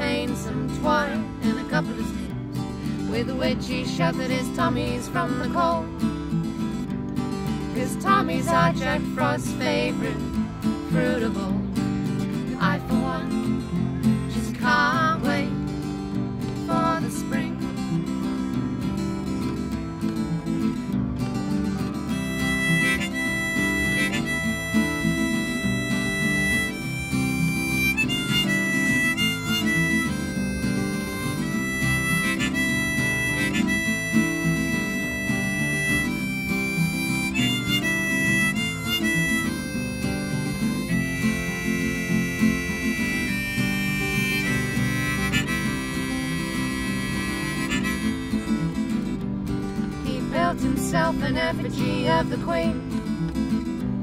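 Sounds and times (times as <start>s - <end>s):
strummed acoustic guitars: 0.0s - 54.0s
harmonica solo: 21.7s - 49.2s.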